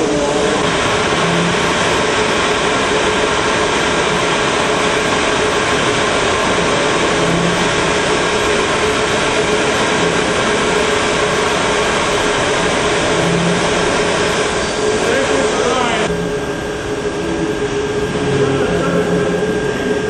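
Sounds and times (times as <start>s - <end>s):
machinery hiss: 0.0s - 20.0s
machinery hum: 0.0s - 20.0s.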